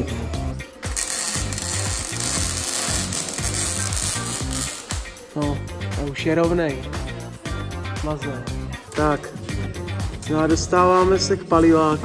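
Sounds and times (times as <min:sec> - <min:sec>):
arc welding crackling hiss: 0:00.8 - 0:05.2.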